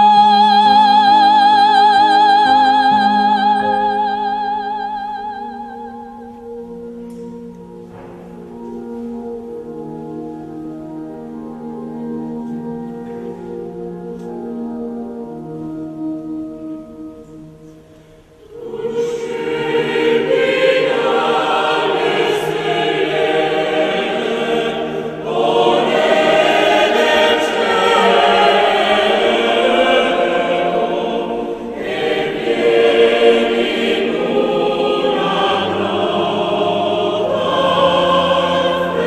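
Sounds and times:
choir singing held phrases: 18.4s - 39.0s.

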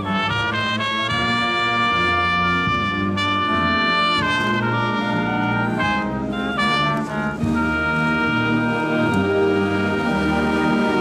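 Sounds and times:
concert band playing chords: 0.0s - 11.0s.

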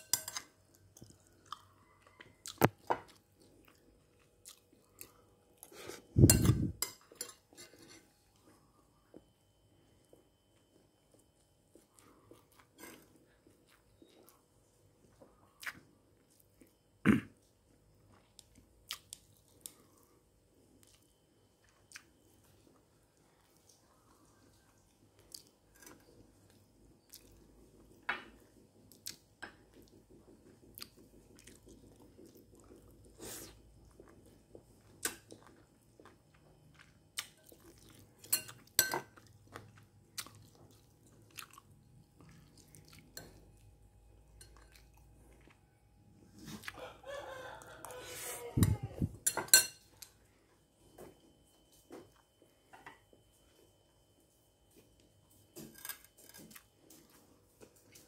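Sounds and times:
spoon clicking against ceramic bowls: 0.0s - 0.5s.

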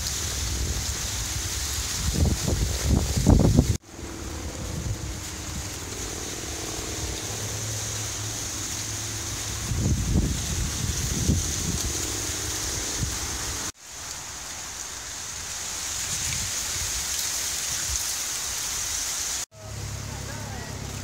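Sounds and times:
wind rustling dry cornstalks: 0.0s - 21.0s.

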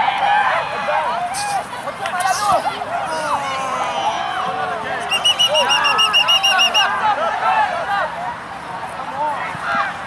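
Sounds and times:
people shouting: 0.2s - 8.1s.

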